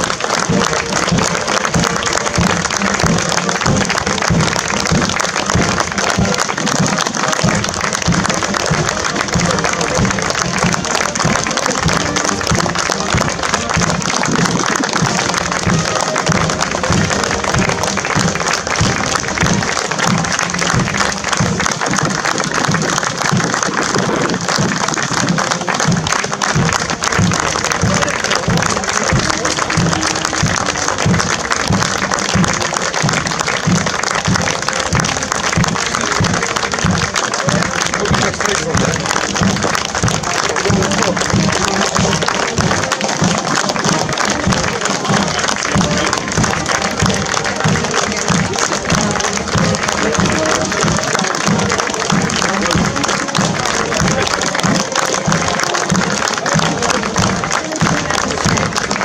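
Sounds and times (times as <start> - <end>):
crowd applauding: 0.0 - 59.0.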